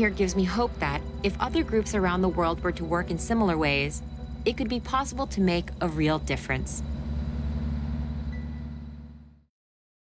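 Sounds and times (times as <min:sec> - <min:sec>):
boat engine droning: 0:00.0 - 0:09.5.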